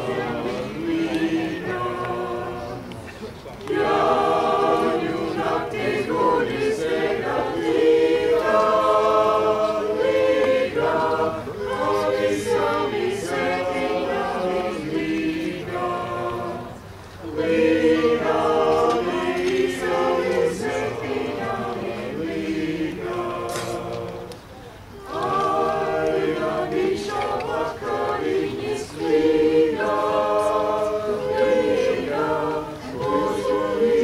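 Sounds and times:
mixed choir singing unaccompanied: 0:00.0 - 0:34.0.

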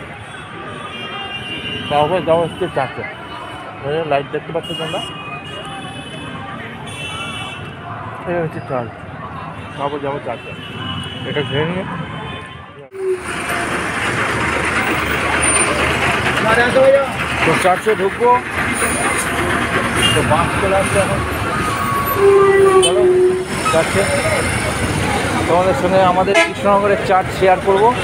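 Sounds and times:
motorbikes and vehicles running: 0:00.0 - 0:28.0
people talking in a crowd: 0:00.0 - 0:28.0.

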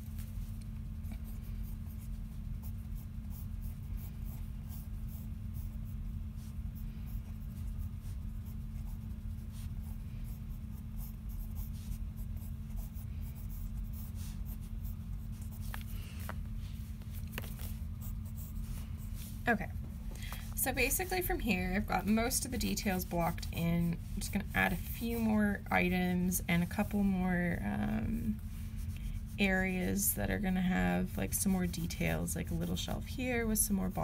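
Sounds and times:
steady low hum: 0:00.0 - 0:34.0
pencil scratching on paper: 0:00.2 - 0:19.2, 0:20.7 - 0:34.0.

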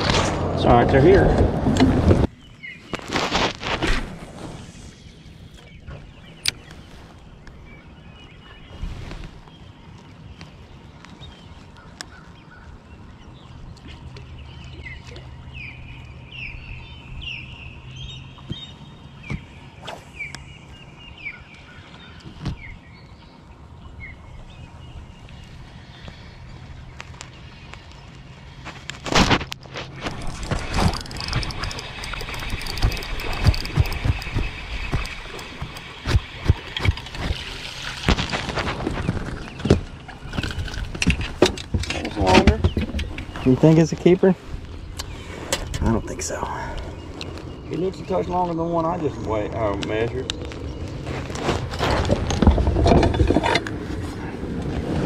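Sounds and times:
birds chirping: 0:00.0 - 0:29.0, 0:29.7 - 0:54.8
spinning reel winding: 0:30.9 - 0:34.4
clattering and rustling: 0:51.0 - 0:54.2.

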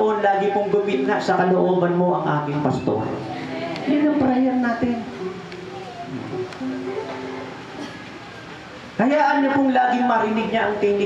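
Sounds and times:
room noise hiss: 0:00.0 - 0:11.0
soft background music: 0:03.9 - 0:08.0.

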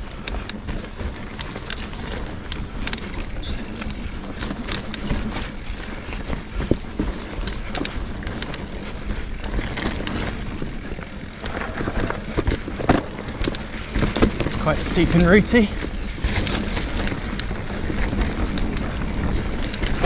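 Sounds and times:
bike clicks and rattles: 0:00.0 - 0:20.0
bike tyres rumbling on dirt: 0:00.0 - 0:20.0.

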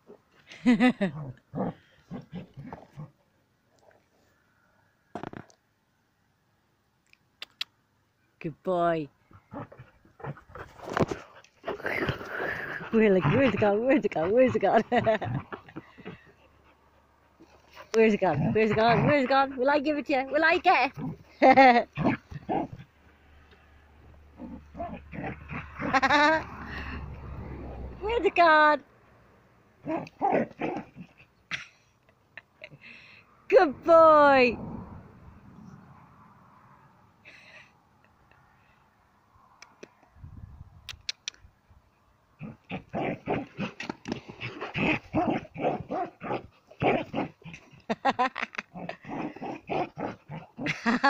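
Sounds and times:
dog grunting: 0:09.3 - 0:16.4, 0:17.8 - 0:19.7.

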